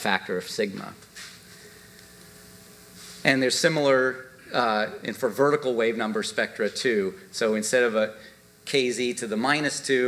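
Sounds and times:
faint electrical hum with hiss: 0.0 - 10.0.

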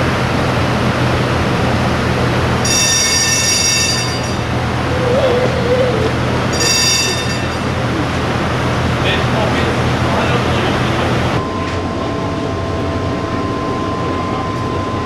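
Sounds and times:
tram rumbling on rails: 0.0 - 15.0
tram wheels squealing: 2.6 - 10.5.

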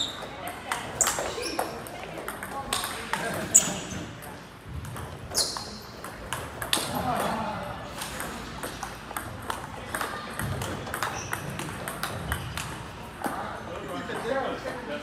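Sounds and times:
people talking: 0.0 - 4.4, 9.4 - 15.0
table tennis balls clicking: 0.0 - 13.5.

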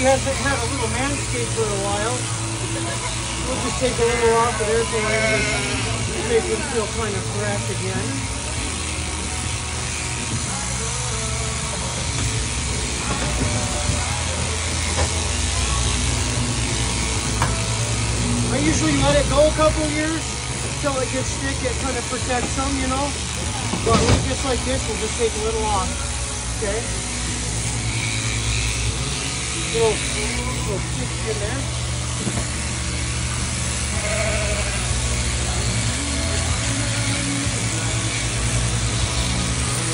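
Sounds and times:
sheep shearing handpiece running: 0.0 - 39.9
cutter clipping wool: 0.2 - 39.9.

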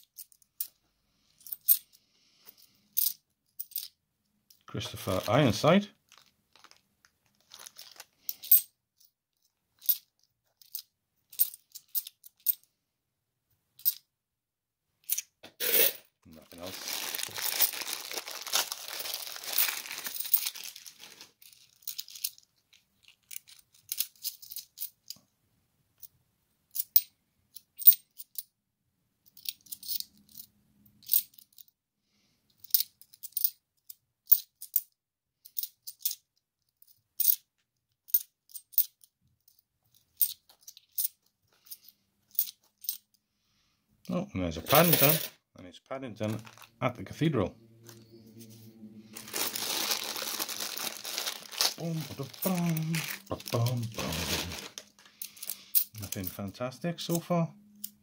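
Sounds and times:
coins clinking: 3.0 - 3.9, 17.4 - 20.8, 29.4 - 31.6, 44.7 - 45.3, 49.2 - 56.4
plastic bag crinkling: 5.0 - 8.4, 16.3 - 23.8, 46.2 - 46.8, 49.1 - 56.1.

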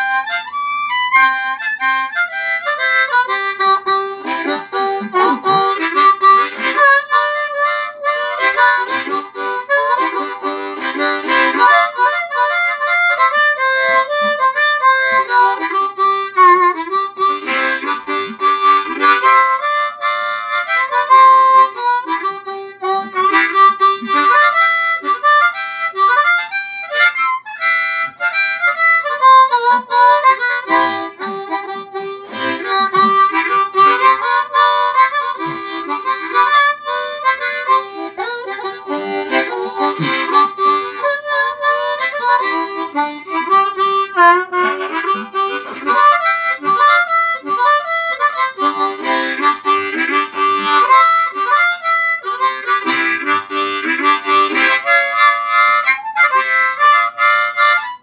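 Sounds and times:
harmonica blues riff: 0.0 - 58.0.

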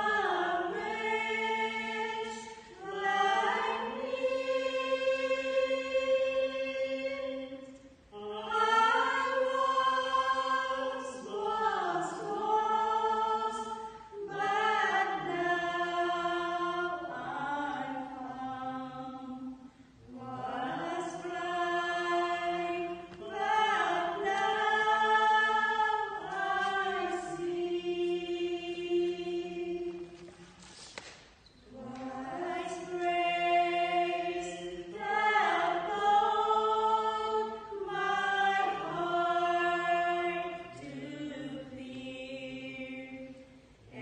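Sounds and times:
women singing a carol together: 0.0 - 30.3, 31.7 - 44.0.

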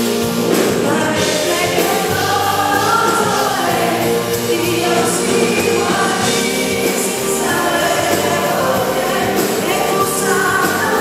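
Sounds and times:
live pop band playing: 0.0 - 11.0
sung vocals on long notes: 0.4 - 11.0.

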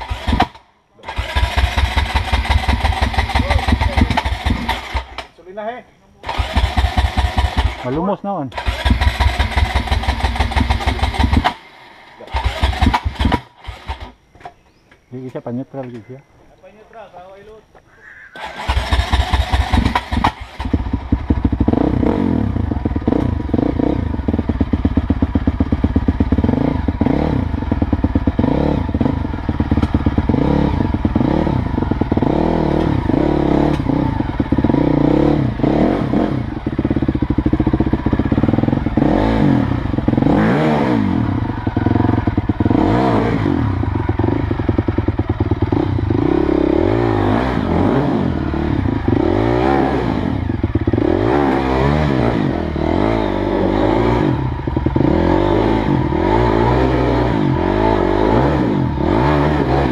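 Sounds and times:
dirt bike engine revving: 0.0 - 5.4, 6.2 - 14.2, 18.4 - 59.9.

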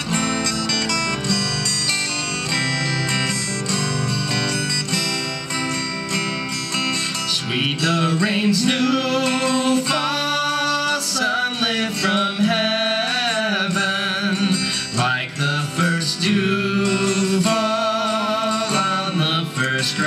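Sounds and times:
acoustic guitars strumming: 0.0 - 20.0
man singing: 7.1 - 20.0.

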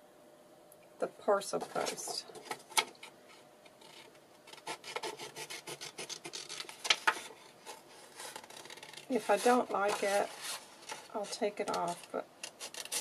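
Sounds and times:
paper rustling and sliding: 5.8 - 13.0.

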